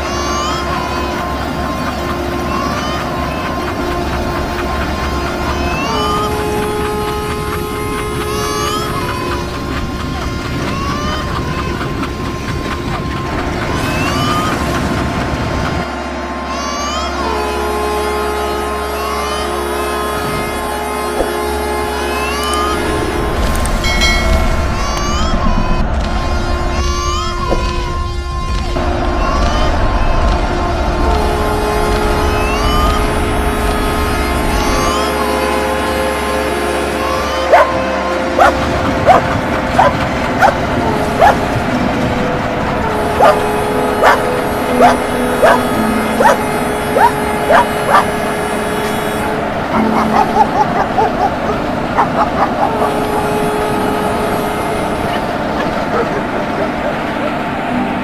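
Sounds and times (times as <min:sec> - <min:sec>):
two-note train horn: 0:00.0 - 0:14.8, 0:15.7 - 0:26.8, 0:27.5 - 0:58.0
diesel locomotive rumble: 0:00.0 - 0:58.0
dog barking: 0:37.5 - 0:37.7, 0:38.4 - 0:39.2, 0:39.8 - 0:40.6, 0:41.2 - 0:41.4, 0:43.2 - 0:43.4, 0:44.0 - 0:46.4, 0:47.0 - 0:48.1, 0:49.8 - 0:53.0, 0:55.1 - 0:56.8.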